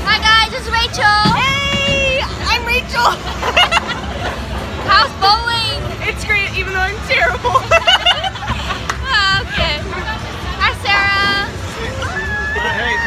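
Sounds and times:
crowd babble: 0.0s - 13.0s
women laughing: 3.1s - 5.1s, 7.3s - 9.3s.

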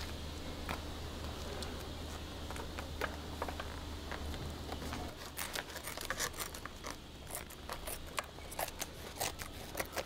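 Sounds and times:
scissors snipping: 5.2s - 10.0s.

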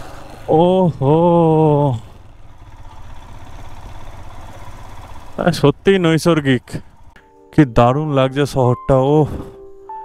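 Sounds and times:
motorcycle engine rumble: 0.0s - 8.2s.

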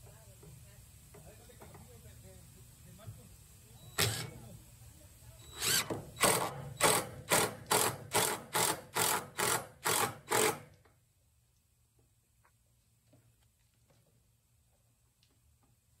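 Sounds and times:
cordless drill driving a screw: 3.9s - 4.4s, 5.4s - 10.7s.

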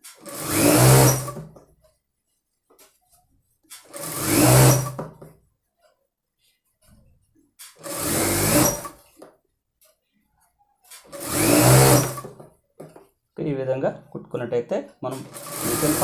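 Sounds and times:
sewing machine stitching: 0.0s - 1.6s, 3.7s - 5.3s, 7.6s - 9.2s, 10.9s - 12.5s, 15.1s - 16.0s.

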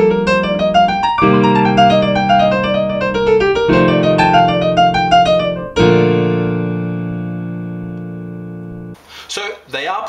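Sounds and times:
piano chord ringing: 0.0s - 9.0s.

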